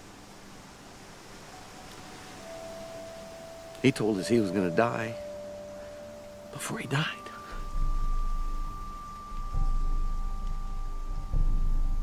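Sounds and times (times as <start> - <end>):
faint hiss: 0.0 - 12.0
sustained film underscore note: 5.8 - 12.0.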